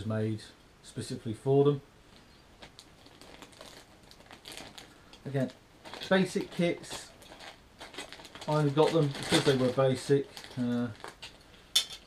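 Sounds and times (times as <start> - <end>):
plastic packaging crinkling: 2.6 - 12.0.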